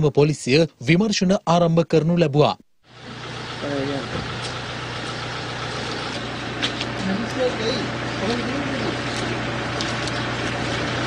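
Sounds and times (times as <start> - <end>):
outdoor background noise: 0.0 - 11.0
vehicle engine idling: 2.8 - 11.0.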